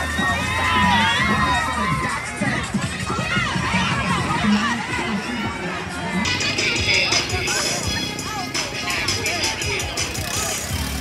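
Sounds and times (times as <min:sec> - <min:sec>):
crowd shouting and cheering: 0:00.0 - 0:11.0
music playing: 0:00.0 - 0:11.0.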